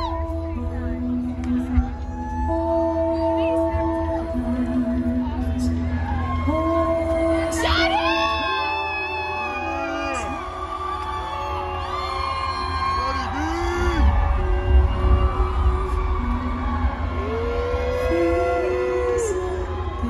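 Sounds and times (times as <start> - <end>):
heavy bass: 11.3 - 20.0.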